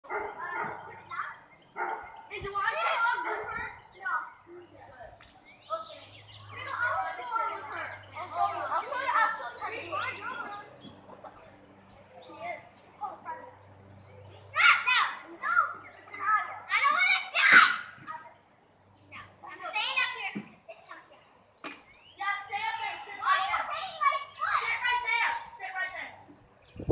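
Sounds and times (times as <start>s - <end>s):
children calling out: 0.1s - 4.8s, 5.7s - 11.5s, 14.2s - 18.4s, 22.2s - 26.3s.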